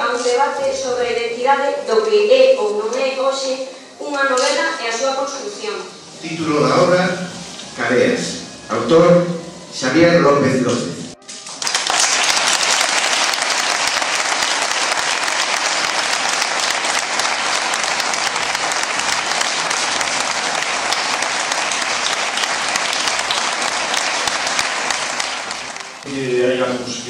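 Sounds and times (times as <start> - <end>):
audience applauding: 11.2 - 27.0.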